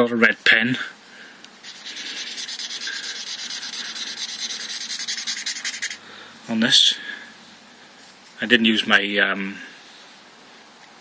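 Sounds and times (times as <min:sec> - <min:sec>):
felt-tip marker scribbling on paper: 0:01.6 - 0:06.0.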